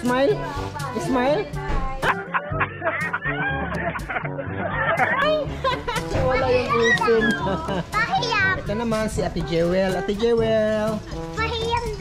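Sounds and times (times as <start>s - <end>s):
children chattering and calling out: 4.7s - 8.8s.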